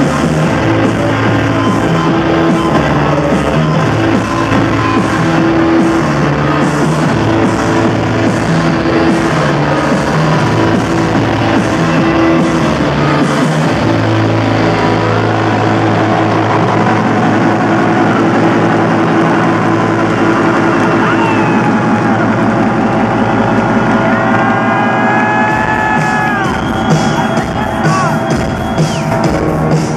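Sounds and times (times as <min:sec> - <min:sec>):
low synth drone: 0:00.0 - 0:26.9
guitar and electronic wash: 0:00.0 - 0:29.9
high sliding whistle-like tones: 0:25.9 - 0:29.2.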